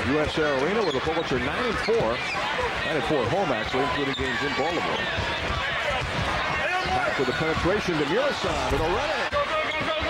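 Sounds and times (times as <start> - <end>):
commentator talking: 2.8 - 5.2, 6.6 - 10.0.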